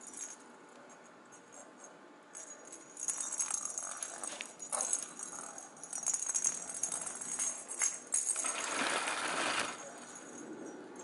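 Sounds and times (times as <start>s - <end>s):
bell in toy ball jingling: 0.0s - 11.0s.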